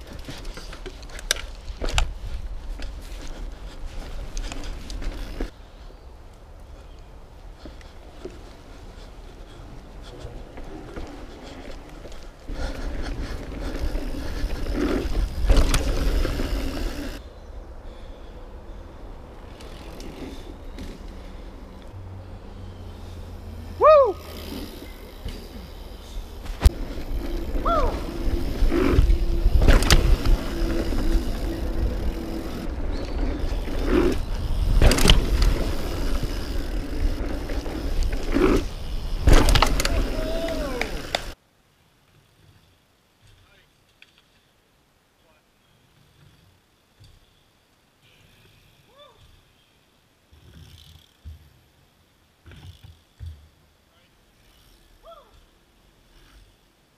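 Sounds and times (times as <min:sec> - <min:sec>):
bike rattling over bumps: 0:00.0 - 0:05.6, 0:07.6 - 0:17.2, 0:22.9 - 0:41.4
tyre and wind noise: 0:00.0 - 0:22.0, 0:23.7 - 0:41.4
person yelping: 0:23.8 - 0:24.3.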